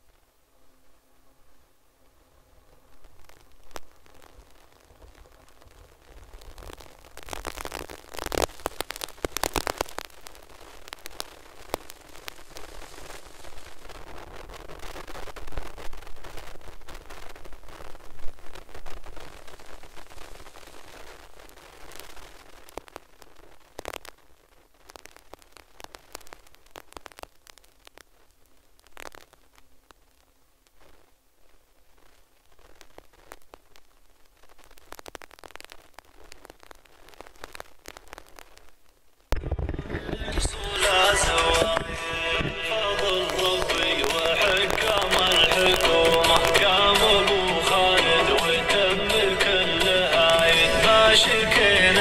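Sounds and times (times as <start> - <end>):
wind rushing on microphone: 39.3 - 45.0
scattered clicks: 39.3 - 51.6.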